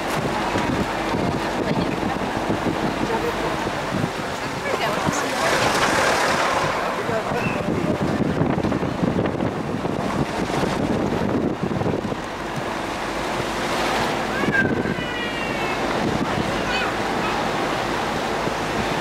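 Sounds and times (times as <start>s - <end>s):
road noise inside moving car: 0.0s - 19.0s
wind buffeting microphone: 0.0s - 19.0s.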